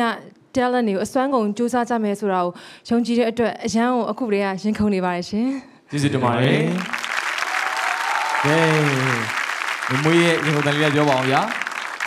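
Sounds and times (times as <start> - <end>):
audience applauding: 6.2 - 12.0.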